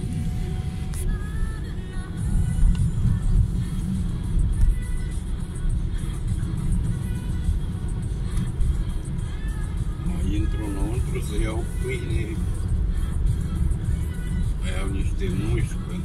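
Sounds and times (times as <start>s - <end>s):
car engine rumble: 0.0s - 16.0s
music playing in car: 0.0s - 16.0s
road noise: 0.0s - 16.0s.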